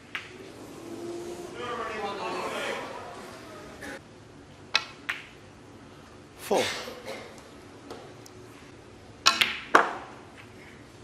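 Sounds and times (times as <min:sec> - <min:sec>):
snooker balls clicking: 0:00.0 - 0:00.6, 0:04.7 - 0:05.4, 0:09.2 - 0:10.8.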